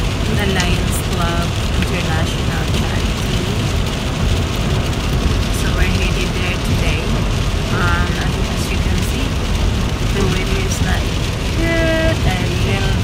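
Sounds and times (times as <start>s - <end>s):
car cabin road noise: 0.0s - 13.0s.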